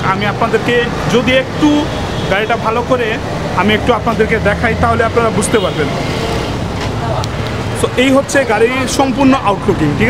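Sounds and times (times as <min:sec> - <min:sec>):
motor vehicle rumble: 0:00.0 - 0:10.0
road noise: 0:00.0 - 0:10.0.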